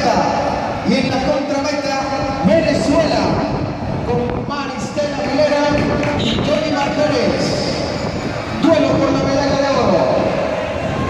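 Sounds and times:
announcer over public address: 8.5s - 10.4s.

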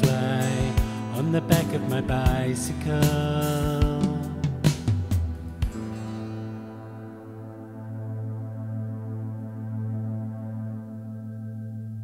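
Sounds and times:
low keyboard chord: 0.0s - 12.0s.

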